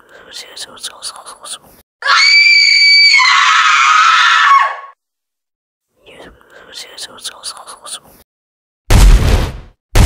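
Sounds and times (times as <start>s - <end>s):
high-pitched scream: 2.0s - 5.0s.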